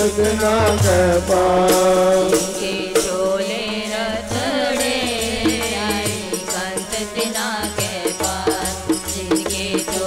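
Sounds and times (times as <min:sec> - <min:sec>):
harmonium notes: 0:00.0 - 0:10.0
voices singing a hymn: 0:00.0 - 0:10.0.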